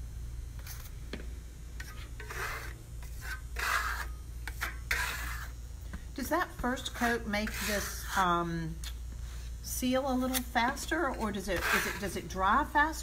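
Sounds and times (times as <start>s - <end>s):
trowel rasping on plaster: 1.8s - 5.6s, 6.8s - 8.3s, 11.5s - 12.2s.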